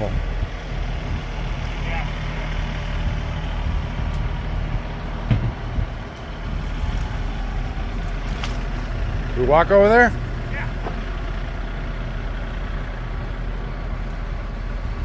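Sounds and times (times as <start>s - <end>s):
low engine hum: 0.0s - 15.0s
low knock: 5.2s - 5.6s.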